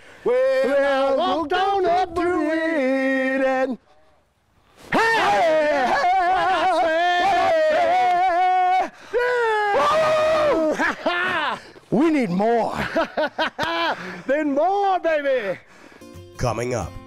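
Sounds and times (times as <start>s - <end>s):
men singing unaccompanied: 0.2s - 3.8s.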